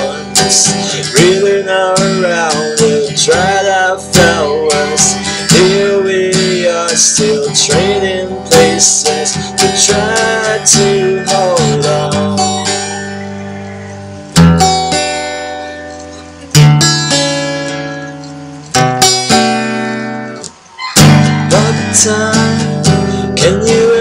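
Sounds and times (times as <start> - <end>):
man singing: 0.0 - 12.9, 21.0 - 24.0
acoustic guitar strumming: 0.0 - 24.0.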